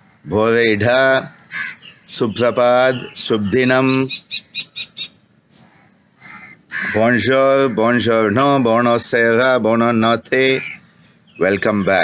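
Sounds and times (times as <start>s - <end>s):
crows cawing: 0.0s - 0.3s, 1.1s - 8.3s, 10.5s - 12.0s
man talking: 0.3s - 1.3s, 2.1s - 4.2s, 6.9s - 10.8s, 11.4s - 12.0s.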